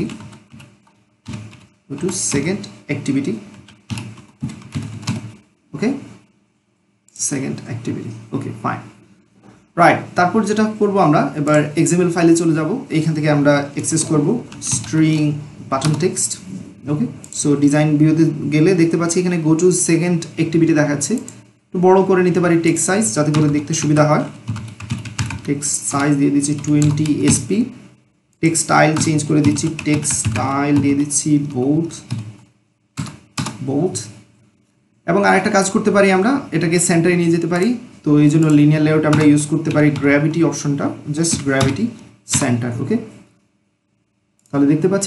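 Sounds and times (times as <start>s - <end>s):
man speaking: 0.0s - 0.2s, 1.9s - 3.6s, 5.7s - 6.2s, 7.1s - 9.0s, 9.7s - 24.4s, 25.4s - 32.2s, 33.6s - 34.3s, 35.1s - 43.2s, 44.5s - 45.0s
computer keyboard clicking: 0.0s - 2.5s, 3.5s - 5.4s, 14.5s - 15.2s, 23.3s - 27.4s, 28.9s - 31.0s, 32.0s - 33.6s, 41.3s - 42.5s.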